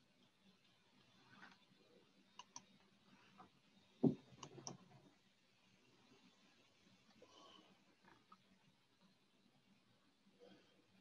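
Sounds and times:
faint clicks: 2.3 - 3.5.

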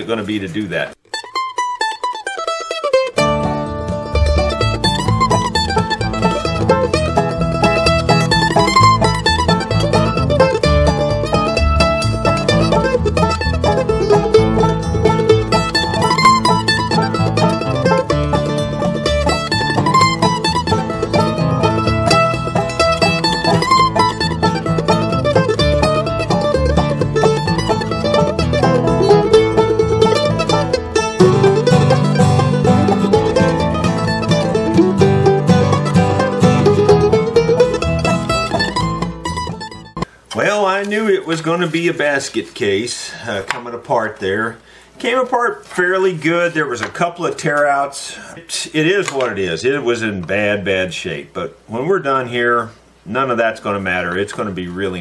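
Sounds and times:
bluegrass mandolin tune: 0.0 - 52.6, 53.2 - 55.0.

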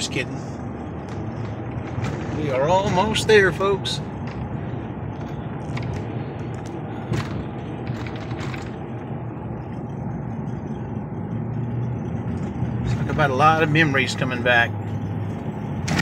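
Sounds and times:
road and engine noise in cabin: 0.0 - 16.0.

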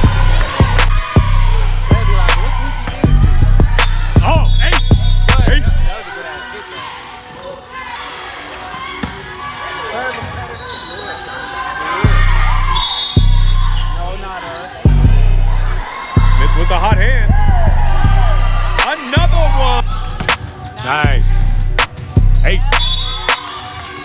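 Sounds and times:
loud music with heavy bass: 0.0 - 5.9, 14.9 - 24.0
players and spectators shouting: 0.0 - 24.0.

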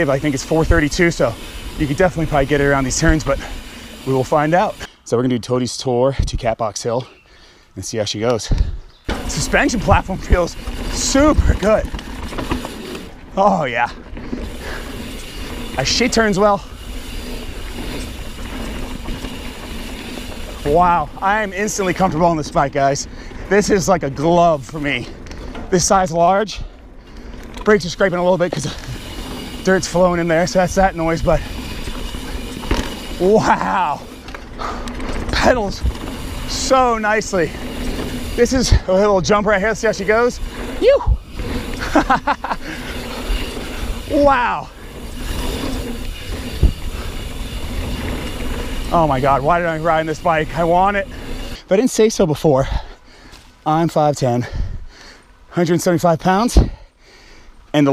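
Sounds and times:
bike tyres rumbling on dirt: 0.0 - 4.9, 8.6 - 54.8
bike thumping over bump: 9.0 - 11.0
wind buffeting microphone: 44.8 - 49.4.

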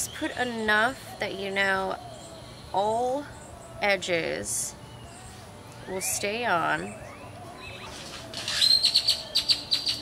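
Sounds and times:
songbird chirping: 0.0 - 10.0.

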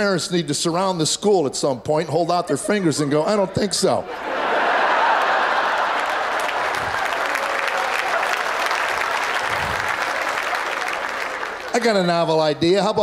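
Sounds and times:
audience applauding: 4.2 - 12.5.

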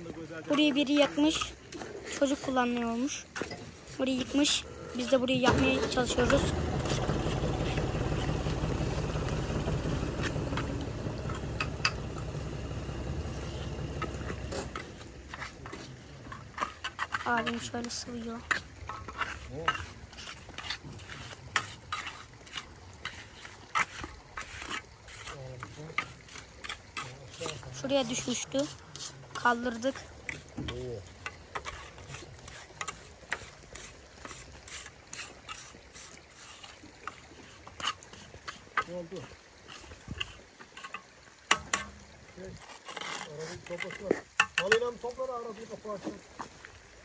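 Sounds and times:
person speaking: 0.0 - 3.3, 4.0 - 7.1, 17.2 - 18.5, 27.0 - 31.1
trowel scraping wet concrete: 0.1 - 45.0
hand trowel knocking: 5.5 - 17.7.

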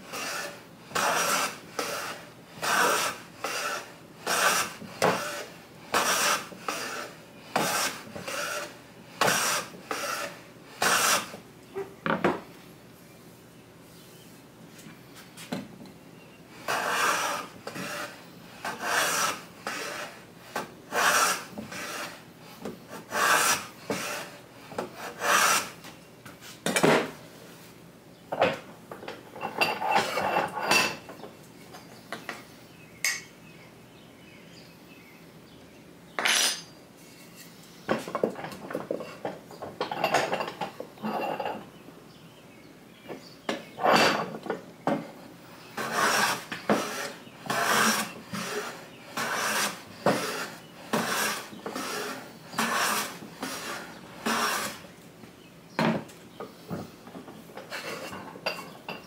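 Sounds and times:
hand plane rasping on wood: 0.1 - 11.4, 16.7 - 20.2, 20.9 - 22.2, 23.0 - 25.8, 45.8 - 54.8.

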